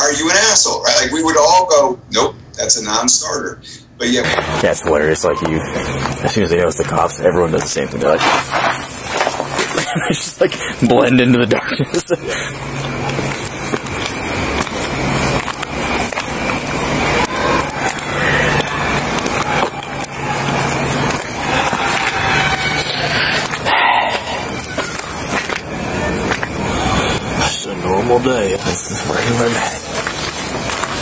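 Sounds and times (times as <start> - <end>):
muffled indistinct voices: 0.0 - 31.0
microphone rubbing and handling noise: 7.6 - 10.3.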